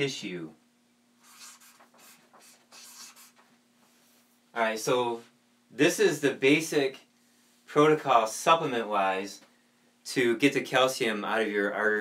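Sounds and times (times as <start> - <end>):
marker pen scratching on paper: 1.2 - 3.5.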